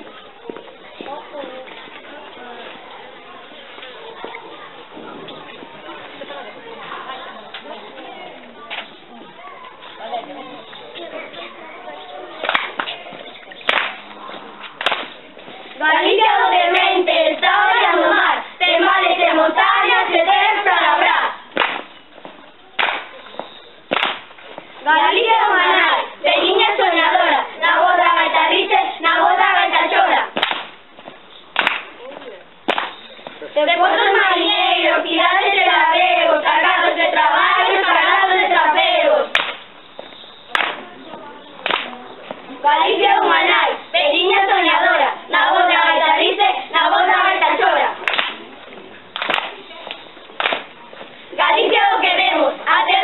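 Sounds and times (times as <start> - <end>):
sharp hand claps: 12.4 - 13.0, 13.7 - 14.0, 14.8 - 15.2, 21.6 - 21.9, 22.8 - 23.2, 23.9 - 24.3, 30.4 - 30.8, 31.6 - 31.9, 32.7 - 33.0, 39.3 - 39.6, 40.5 - 40.8, 41.6 - 42.0, 48.0 - 48.4, 49.2 - 50.7
voices singing together: 15.1 - 21.6, 24.8 - 30.4, 32.7 - 48.2, 51.0 - 53.0.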